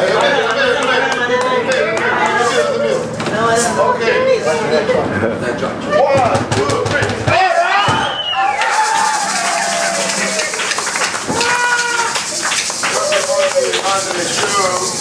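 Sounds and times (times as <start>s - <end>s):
people clapping: 0.0s - 2.6s, 6.5s - 15.0s
percussion: 6.1s - 15.0s
crowd shouting and cheering: 7.3s - 14.9s
acoustic guitar strumming: 8.6s - 15.0s.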